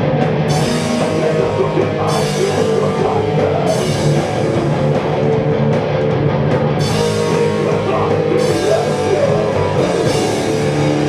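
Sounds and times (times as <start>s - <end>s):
hardcore band playing live: 0.0s - 11.0s.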